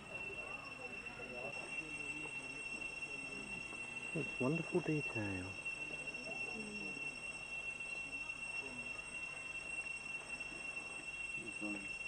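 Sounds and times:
cicadas droning: 0.0 - 12.0
faint voices: 0.0 - 12.0.

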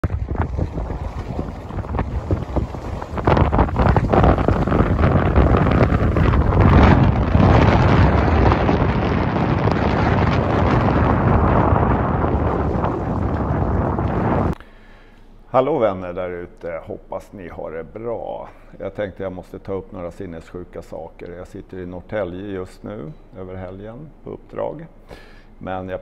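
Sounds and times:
wind buffeting microphone: 0.0 - 14.6.

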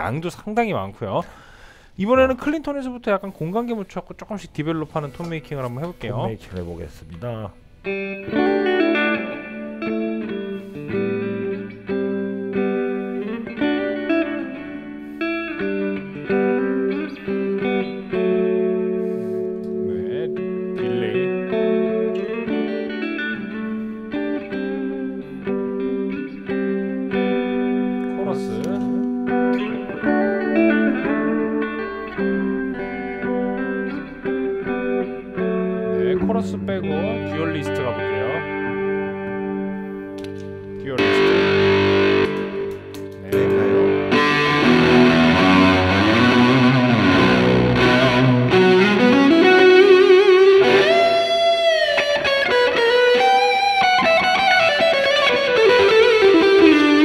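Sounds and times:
electric guitar chords and notes: 7.0 - 57.0.

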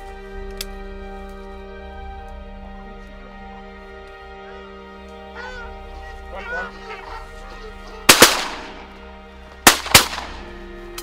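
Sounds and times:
geese honking in flight: 4.4 - 9.2
loud shotgun shots: 8.1 - 9.0, 9.6 - 10.5.

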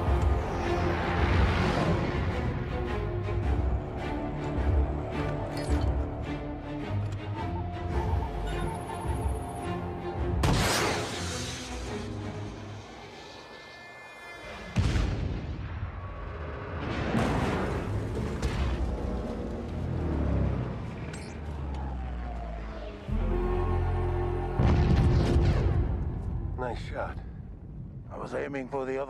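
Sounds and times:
film score music: 0.0 - 29.0
explosion booms: 24.6 - 26.2.

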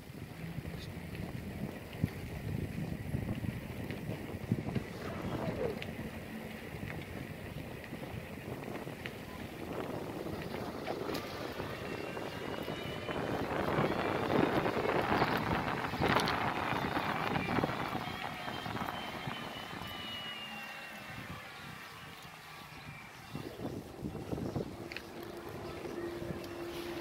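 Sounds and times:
bike tyre noise on pavement: 0.0 - 27.0
wind buffeting microphone: 0.0 - 27.0
faint high whine: 4.6 - 7.2, 9.0 - 27.0.

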